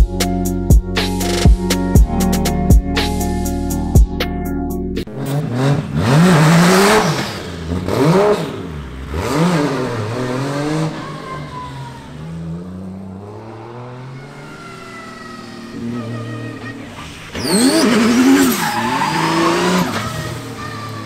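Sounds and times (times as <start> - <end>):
car engine revving: 5.0 - 21.0.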